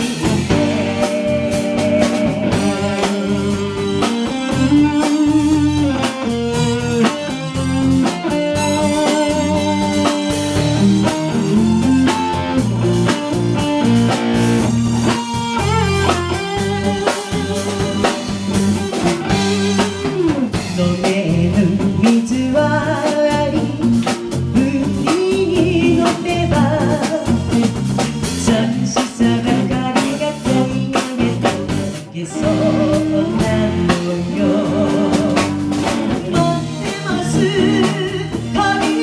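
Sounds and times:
person singing: 0:00.0 - 0:13.3, 0:15.1 - 0:39.0
live band playing: 0:00.0 - 0:39.0
steady drum beat: 0:00.0 - 0:39.0.

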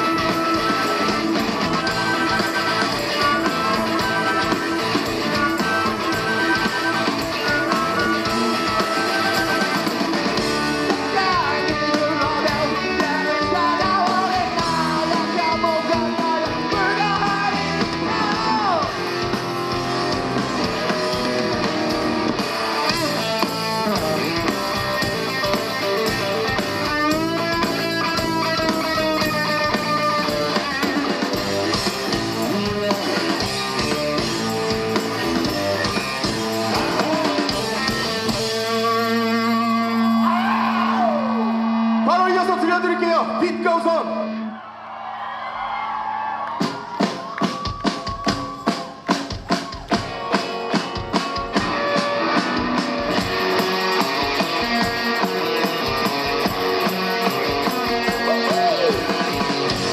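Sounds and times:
person singing: 0:00.0 - 0:10.1, 0:10.8 - 0:19.2, 0:36.4 - 0:40.3, 0:54.2 - 0:59.9
drum kit: 0:00.0 - 0:43.6, 0:46.5 - 0:59.9
electric guitars: 0:00.0 - 0:44.7, 0:45.4 - 0:59.9.

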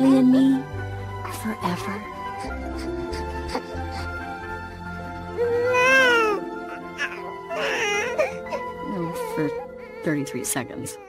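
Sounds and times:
soft film score music: 0:00.0 - 0:11.0
newborn baby crying: 0:05.3 - 0:11.0.

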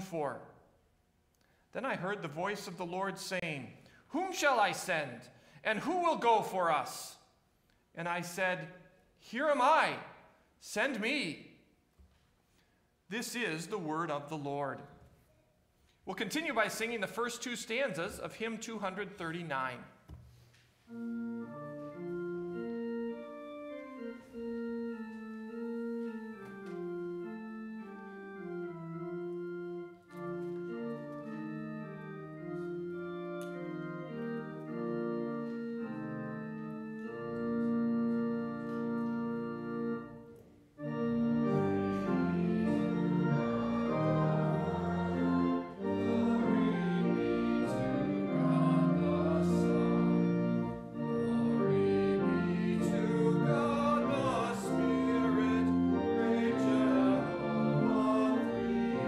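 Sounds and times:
church organ playing a hymn: 0:00.0 - 0:00.6, 0:01.7 - 0:07.2, 0:08.0 - 0:11.4, 0:13.1 - 0:14.9, 0:16.1 - 0:19.8, 0:20.8 - 0:59.0.

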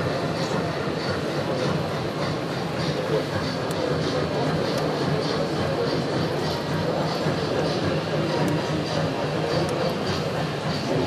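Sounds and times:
chatter of many voices: 0:00.0 - 0:11.0
model train running on track: 0:00.0 - 0:11.0.

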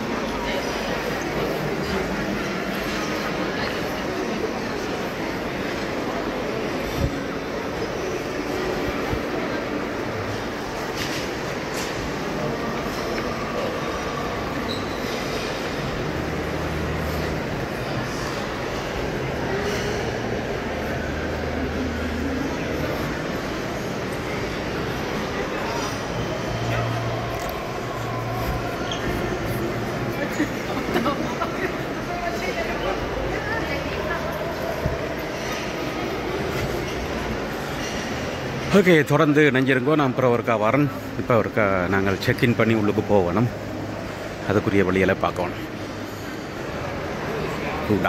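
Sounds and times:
rumble and hiss of lobby: 0:00.0 - 0:48.0.

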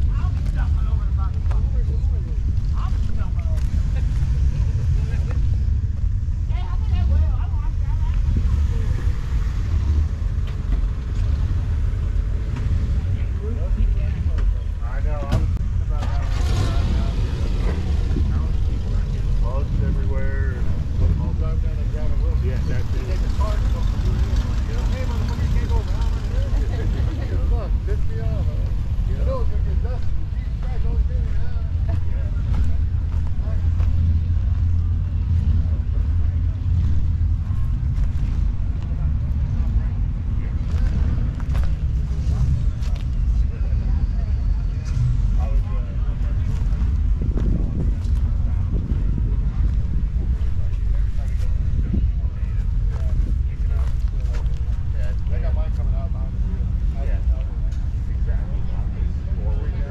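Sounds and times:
distant people chattering: 0:00.0 - 0:59.9
wind rumble on microphone: 0:00.0 - 0:59.9.

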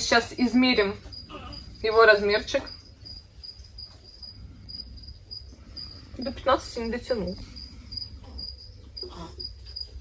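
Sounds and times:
cricket chirping: 0:00.0 - 0:10.0
faint low hum: 0:00.0 - 0:10.0.

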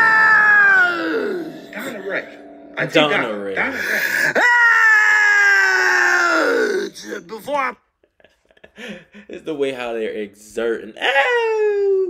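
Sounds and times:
person yelling: 0:00.0 - 0:03.3, 0:04.3 - 0:07.8, 0:11.0 - 0:12.0.

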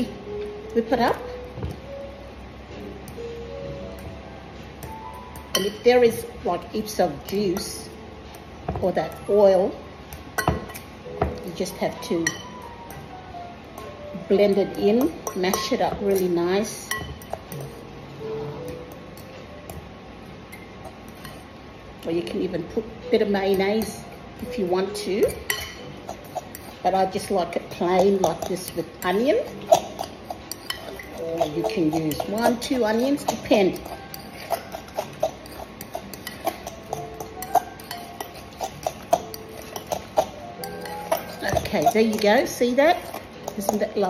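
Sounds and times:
fork scraping glass bowl: 0:25.5 - 0:27.2, 0:27.8 - 0:43.9.

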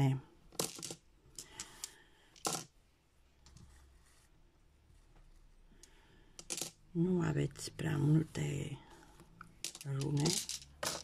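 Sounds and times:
small stones clicking: 0:09.4 - 0:11.0.

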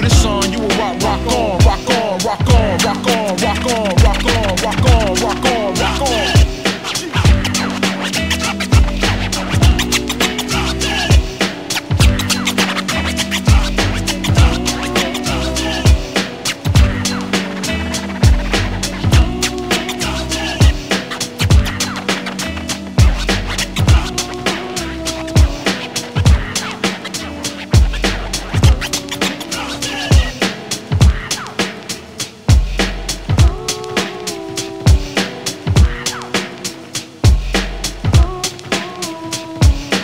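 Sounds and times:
deep kick drums: 0:00.0 - 0:00.5, 0:01.6 - 0:01.8, 0:02.4 - 0:02.9, 0:04.0 - 0:05.3, 0:06.4 - 0:06.6, 0:07.2 - 0:07.6, 0:08.7 - 0:10.0, 0:11.9 - 0:12.3, 0:13.5 - 0:14.8, 0:16.8 - 0:17.1, 0:18.2 - 0:19.5, 0:21.5 - 0:21.8, 0:23.0 - 0:24.2, 0:26.2 - 0:26.6, 0:28.6 - 0:28.9, 0:31.0 - 0:31.3, 0:32.5 - 0:33.6, 0:37.2 - 0:38.4
instrumental hip hop beat: 0:00.0 - 0:40.0
turntable scratching: 0:00.0 - 0:40.0.

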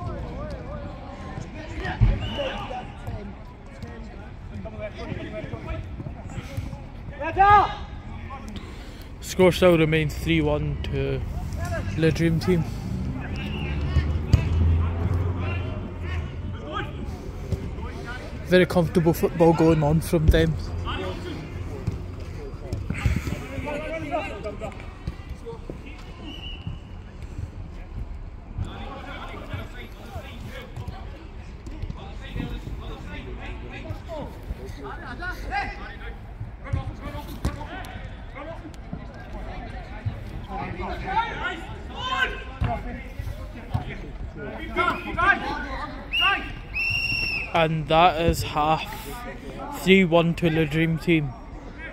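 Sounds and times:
players shouting: 0:11.5 - 0:26.8, 0:31.9 - 0:51.3.

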